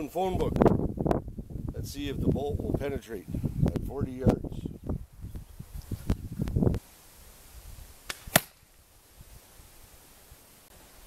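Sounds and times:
crossbow firing snap: 8.0s - 8.7s
crossbow bolt striking paper: 8.1s - 8.6s.

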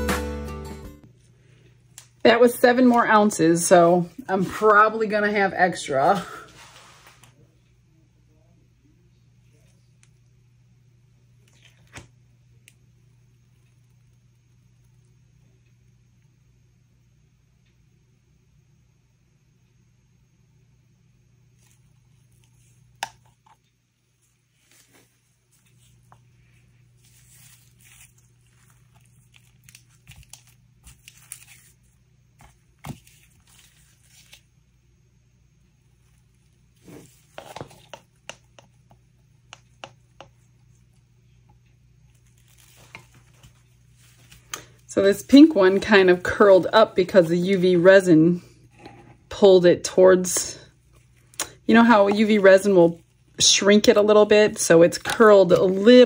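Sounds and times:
low steady hum: 0.0s - 56.0s
rustling and crinkling: 21.6s - 34.5s, 36.0s - 39.0s, 39.6s - 49.2s
plastic cups tapping and clicking: 37.3s - 40.4s.

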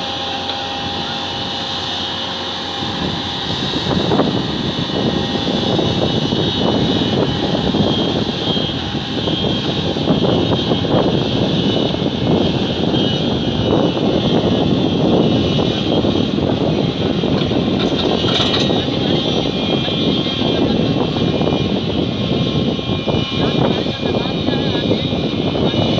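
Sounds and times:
excavator diesel engine running: 0.0s - 10.9s, 15.8s - 22.2s
high whine: 0.0s - 25.9s.

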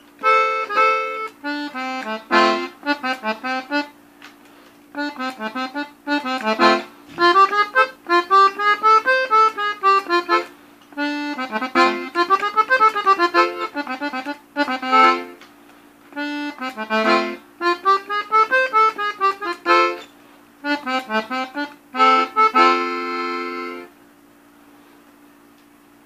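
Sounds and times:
button accordion melody: 0.0s - 4.0s, 4.9s - 15.5s, 16.1s - 24.0s.

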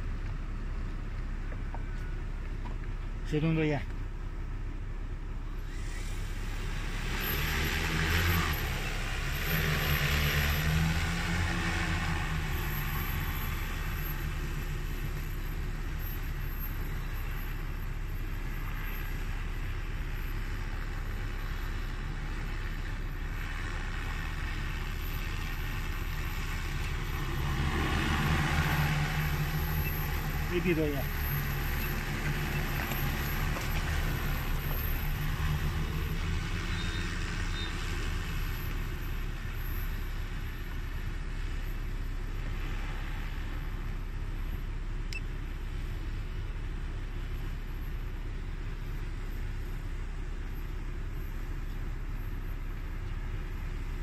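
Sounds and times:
drone propellers humming: 20.2s - 39.0s.

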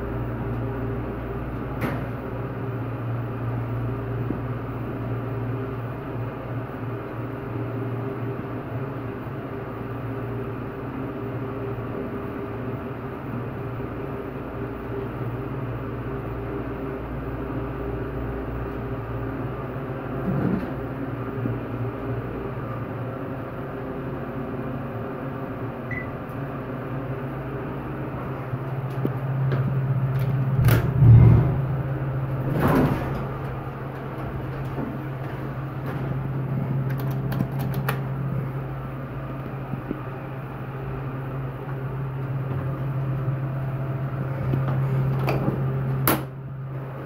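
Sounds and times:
elevator hum and rumble: 0.0s - 47.0s
elevator bump: 28.9s - 38.2s.

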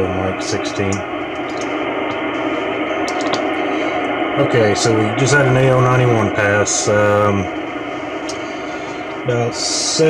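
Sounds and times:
hissy radio static: 0.0s - 10.0s.

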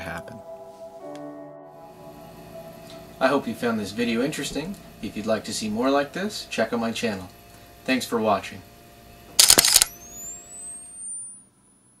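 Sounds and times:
camera flash recharging whine: 9.3s - 12.0s.

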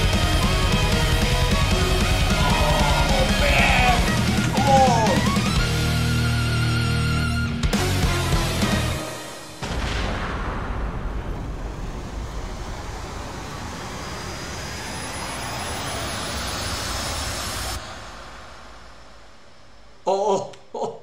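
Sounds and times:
dense rushing noise: 0.0s - 5.6s, 9.4s - 20.1s
faint rising whistle: 12.8s - 19.9s.

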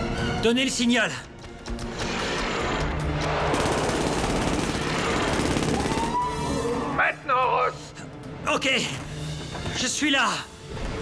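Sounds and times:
dramatic music: 0.0s - 11.0s
rapid machine-gun fire: 3.4s - 6.2s.

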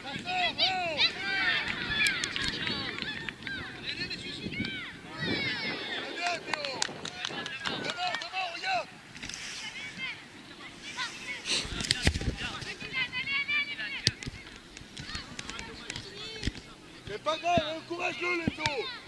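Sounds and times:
children shouting: 0.3s - 3.8s
wind gust on microphone: 0.5s - 8.4s.

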